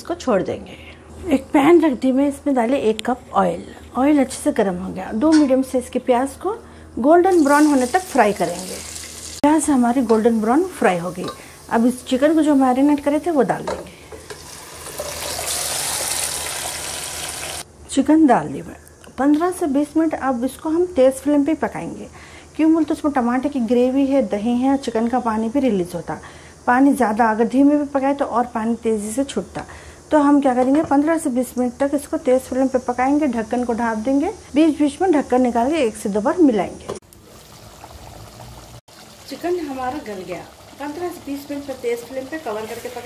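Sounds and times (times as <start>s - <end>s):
marinade sizzling in hot oil: 7.1s - 17.7s, 30.1s - 43.0s
pot boiling with bubbling: 7.3s - 17.7s, 35.1s - 43.0s.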